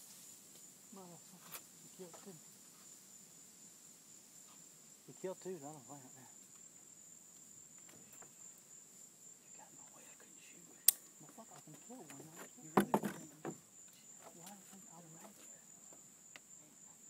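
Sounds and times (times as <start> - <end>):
crickets chirping: 0.0 - 17.0
knocks: 12.7 - 13.6.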